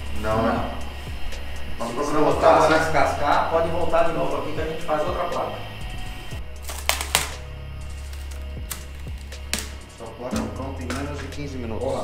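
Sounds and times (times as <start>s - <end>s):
machine humming: 0.0s - 10.9s.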